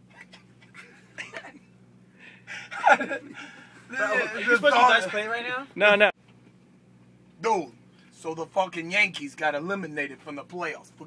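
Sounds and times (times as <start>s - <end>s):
low steady hum: 0.0s - 11.0s
man breathing: 2.0s - 3.9s
man stifled laugh: 2.5s - 4.0s.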